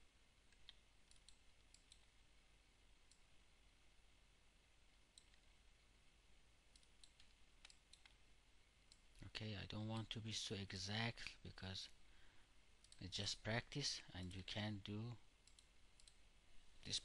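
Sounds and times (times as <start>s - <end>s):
low steady hum: 0.0s - 17.0s
faint mouse clicks: 0.5s - 2.1s, 5.1s - 5.6s, 6.7s - 8.2s, 12.8s - 13.1s, 15.4s - 16.2s.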